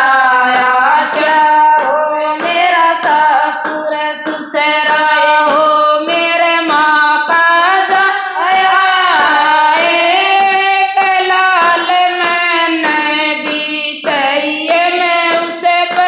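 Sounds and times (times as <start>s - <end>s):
hand claps: 0.0s - 16.0s
women singing in unison: 0.0s - 16.0s.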